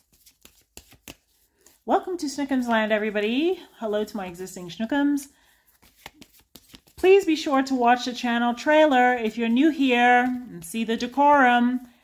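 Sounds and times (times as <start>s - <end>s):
cards being shuffled: 0.0s - 2.9s, 5.5s - 7.4s, 8.8s - 10.7s
woman speaking: 1.9s - 5.3s, 7.0s - 11.9s.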